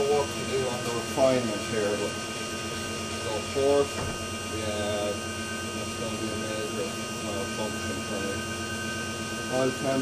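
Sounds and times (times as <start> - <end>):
electric motor hum and whine: 0.0 - 10.0.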